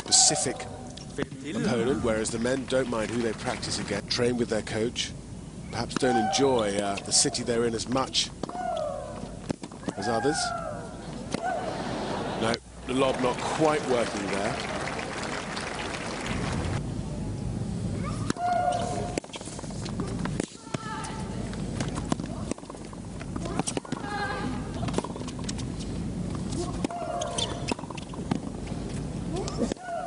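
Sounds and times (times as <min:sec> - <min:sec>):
rackets striking tennis ball: 0:05.9 - 0:11.8, 0:18.2 - 0:30.0.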